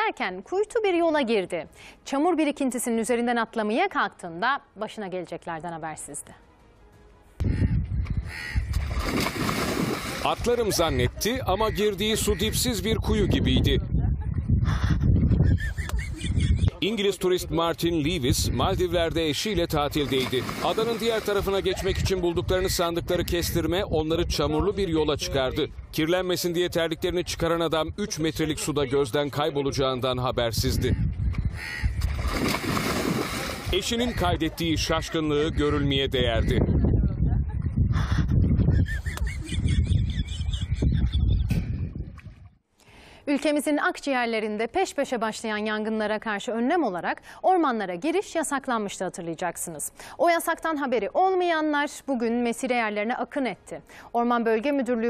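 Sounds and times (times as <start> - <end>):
wind buffeting microphone: 7.4 - 16.8, 17.4 - 28.6, 30.1 - 42.6
water sloshing: 8.7 - 11.0, 19.7 - 22.0, 32.0 - 34.2.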